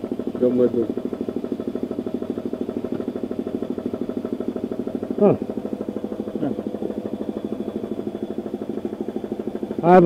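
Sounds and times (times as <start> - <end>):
motor running with pulsing beat: 0.0 - 10.0.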